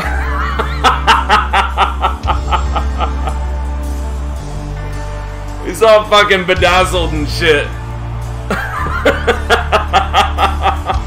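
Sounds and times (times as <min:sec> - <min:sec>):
man chuckling: 0:00.0 - 0:03.6, 0:08.5 - 0:11.0.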